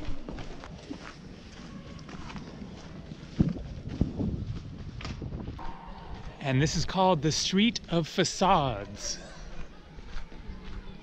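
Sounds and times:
footsteps on gravel path: 0.0 - 11.0.

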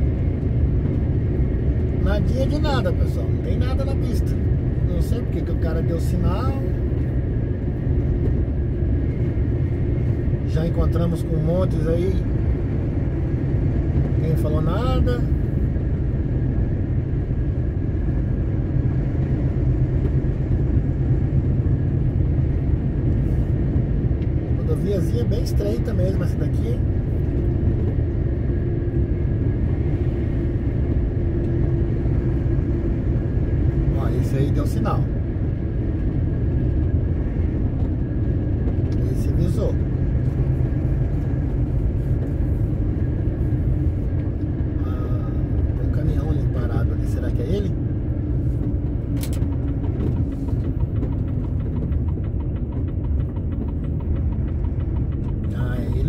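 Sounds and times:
truck engine and road rumble: 0.0 - 56.0.

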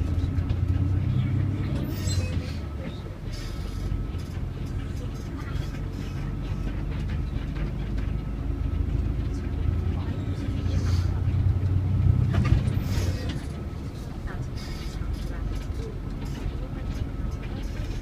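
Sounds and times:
bus engine hum: 0.0 - 18.0
road noise: 0.0 - 18.0.

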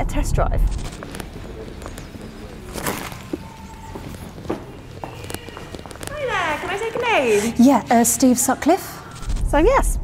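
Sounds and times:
footsteps on brick paving: 0.9 - 8.1.

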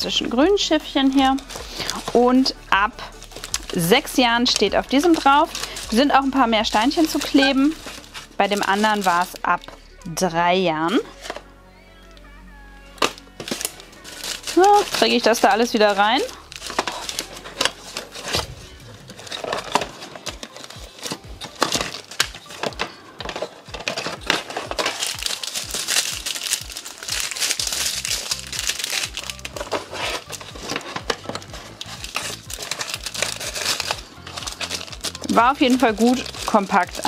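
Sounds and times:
plastic bags crinkling: 0.0 - 9.9, 10.8 - 11.5, 13.0 - 37.0
quiet background music: 0.0 - 37.0.

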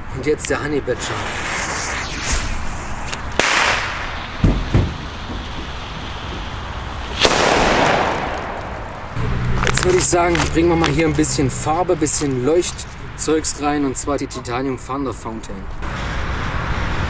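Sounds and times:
firecracker crack: 0.8 - 10.9
firecracker bang echoing: 1.0 - 9.3.

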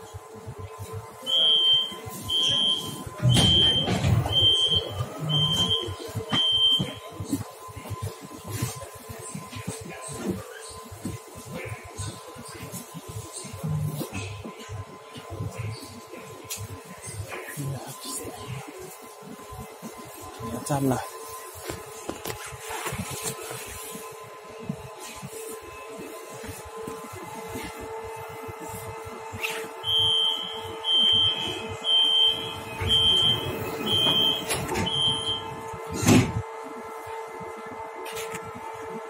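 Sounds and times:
train carriage hum: 0.0 - 39.0
high electronic beeps: 29.9 - 35.4.

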